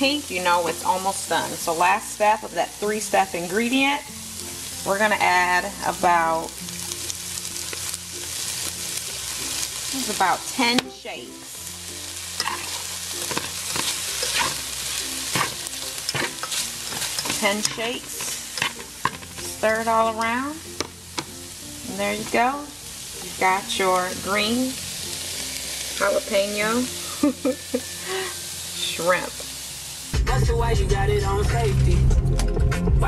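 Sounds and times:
shrimp sizzling in a pan: 0.0s - 30.2s.

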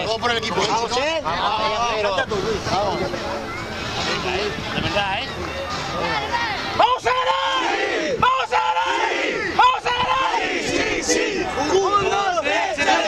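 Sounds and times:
group shouting battle cry: 6.8s - 13.0s.

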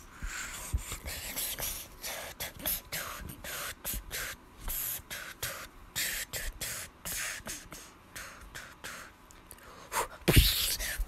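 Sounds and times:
breathy hissing mouth sounds: 0.1s - 11.0s.

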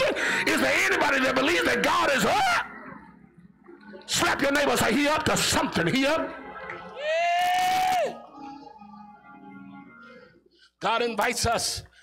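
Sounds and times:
faint sustained music: 0.0s - 10.8s.

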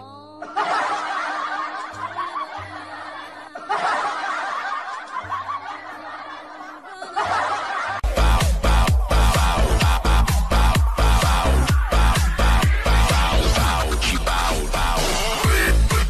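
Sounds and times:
people laughing: 0.4s - 15.0s
electronic dance music: 6.0s - 16.0s.

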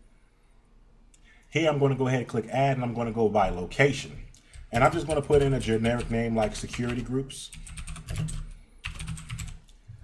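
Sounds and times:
keyboard typing clicks: 6.7s - 9.8s.

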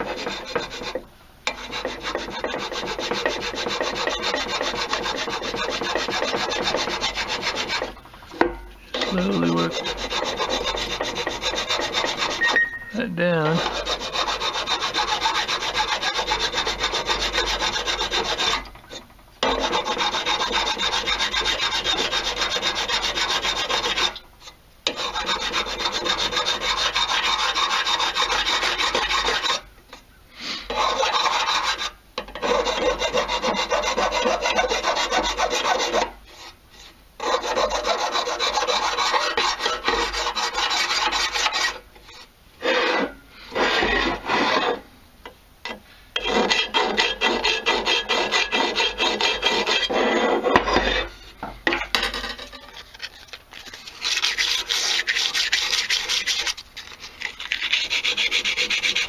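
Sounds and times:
hand file rasping on metal: 0.0s - 8.0s, 8.9s - 12.8s, 13.4s - 24.2s, 24.9s - 29.6s, 30.7s - 44.8s, 46.2s - 51.3s, 52.2s - 59.0s.

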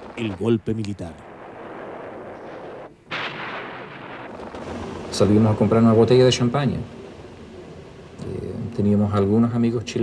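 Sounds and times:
gunshot blast: 1.2s - 6.5s
noisy film soundtrack background: 4.0s - 10.0s.

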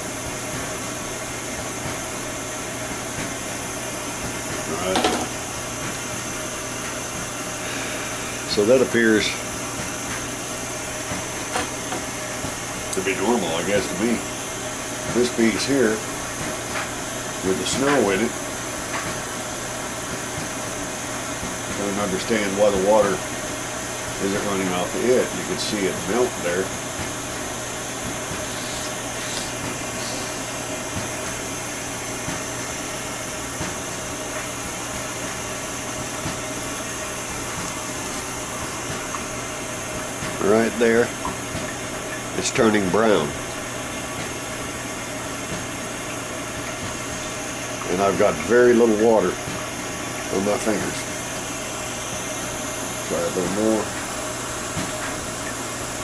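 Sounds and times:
torch flame hissing: 6.3s - 18.5s, 27.3s - 30.7s.

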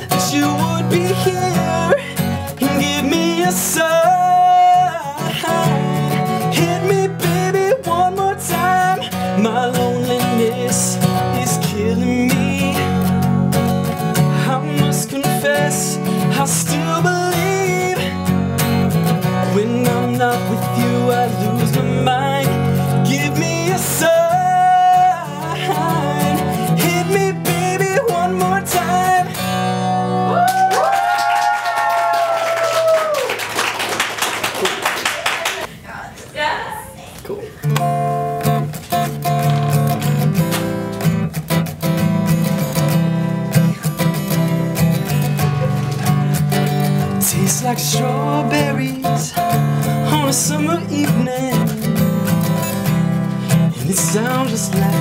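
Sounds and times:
acoustic guitar strumming: 0.0s - 30.4s, 37.6s - 55.0s
man singing: 0.0s - 30.4s, 43.6s - 55.0s
background noise: 0.0s - 55.0s.

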